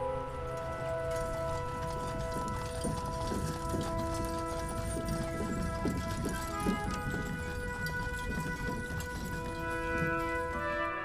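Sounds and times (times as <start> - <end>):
horses hooves clip-clopping: 0.0 - 11.0
sustained background music: 0.0 - 11.0.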